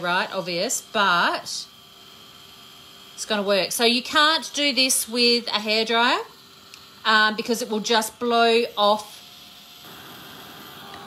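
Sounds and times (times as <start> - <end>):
heat gun fan whirring: 0.0 - 11.0.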